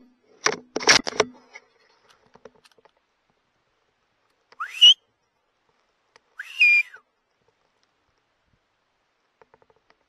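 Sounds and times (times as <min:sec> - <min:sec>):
loud whistles: 0:04.6 - 0:05.0, 0:06.4 - 0:07.0.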